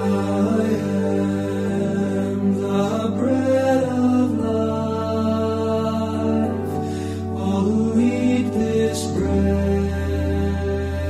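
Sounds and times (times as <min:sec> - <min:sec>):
male vocal quartet singing a hymn: 0:00.0 - 0:11.0.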